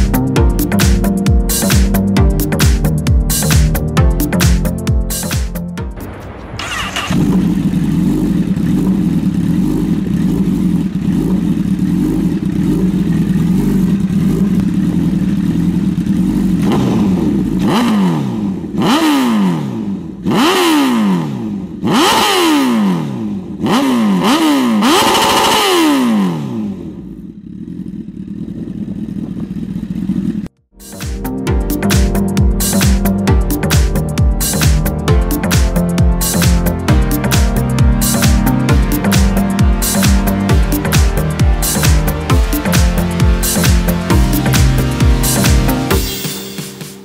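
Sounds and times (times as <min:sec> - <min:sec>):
motorcycle engine idling and revving: 0:00.0 - 0:47.0.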